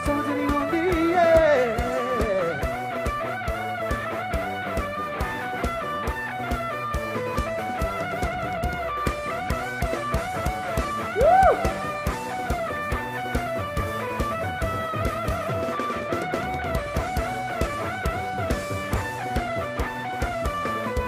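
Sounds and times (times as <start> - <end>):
drum kit beat: 0.0 - 21.0
guitar melody: 0.0 - 21.0.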